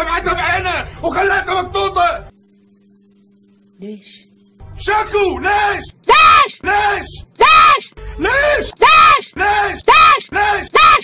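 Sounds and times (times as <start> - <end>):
woman shouting: 6.0 - 6.6, 7.4 - 8.0, 8.8 - 9.3, 9.9 - 11.0.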